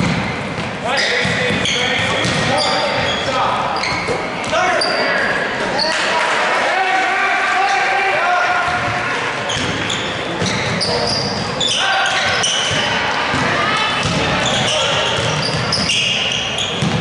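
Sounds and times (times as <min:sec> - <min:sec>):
sneakers squeaking: 0:00.0 - 0:06.1, 0:08.7 - 0:17.0
crowd shouting: 0:11.6 - 0:15.5
basketball bouncing on hardwood: 0:16.8 - 0:17.0.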